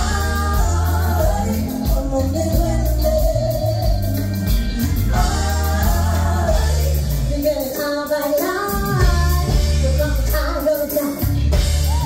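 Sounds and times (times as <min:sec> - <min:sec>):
several voices singing together: 0:00.0 - 0:04.2, 0:04.8 - 0:09.6
live pop band playing: 0:00.0 - 0:12.0
woman singing lead: 0:00.0 - 0:12.0.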